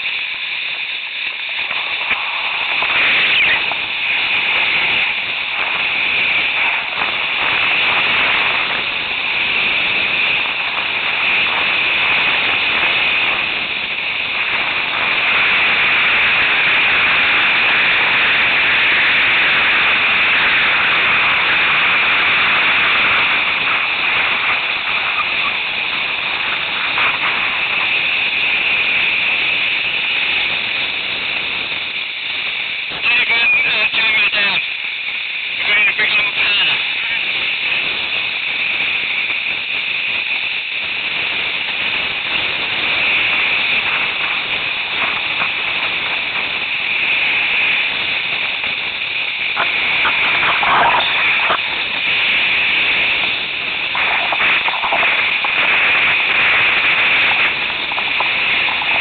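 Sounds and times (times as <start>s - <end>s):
wind on microphone: 0.0s - 33.1s, 36.6s - 59.0s
sliding over snow hiss: 0.0s - 59.0s.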